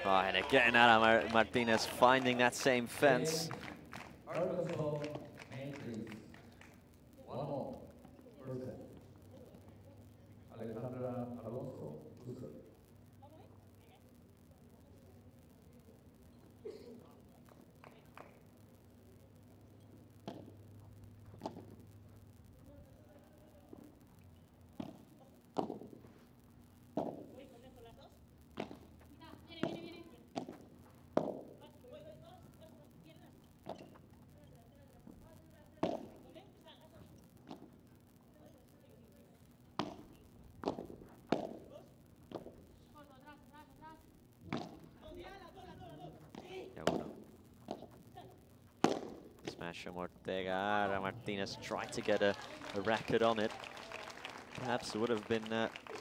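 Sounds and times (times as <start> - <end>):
ball hits and bounces: 20.2 - 20.6, 21.3 - 21.8, 24.8 - 26.0, 26.9 - 27.4, 28.6 - 29.0, 29.6 - 31.6, 33.6 - 34.1, 35.7 - 36.3, 37.4 - 37.8, 39.7 - 42.6, 44.4 - 45.0, 46.2 - 48.0, 48.8 - 49.6.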